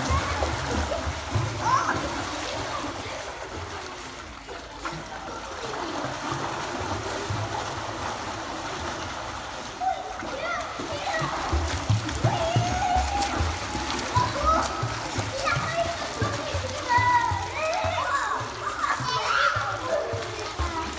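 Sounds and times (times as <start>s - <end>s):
children calling out: 0.0s - 3.4s, 9.8s - 20.9s
children splashing in a pool: 0.0s - 20.9s.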